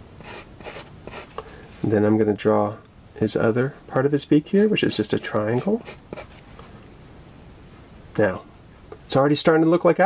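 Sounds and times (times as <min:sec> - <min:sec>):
pencil scratching on paper: 0:00.2 - 0:01.4, 0:04.6 - 0:06.4.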